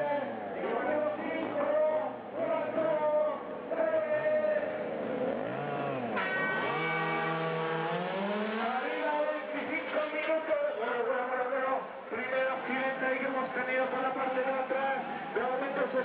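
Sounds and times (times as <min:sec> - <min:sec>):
model race car motors revving: 0:00.0 - 0:10.4.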